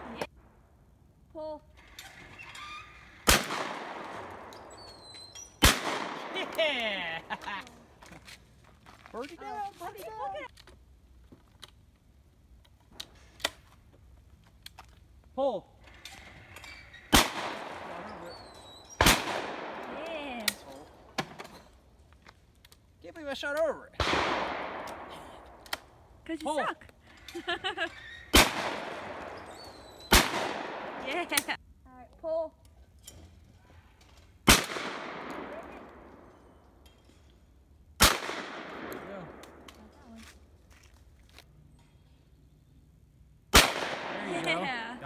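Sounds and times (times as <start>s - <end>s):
shotgun shots: 3.2s - 4.5s, 5.6s - 6.9s, 17.1s - 18.2s, 19.0s - 20.0s, 24.0s - 25.6s, 28.3s - 29.4s, 30.1s - 31.6s, 34.4s - 36.2s, 38.0s - 39.7s, 43.5s - 44.8s.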